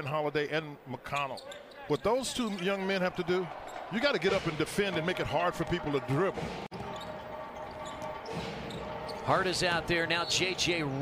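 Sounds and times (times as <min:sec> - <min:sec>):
arena noise: 0:00.7 - 0:11.0.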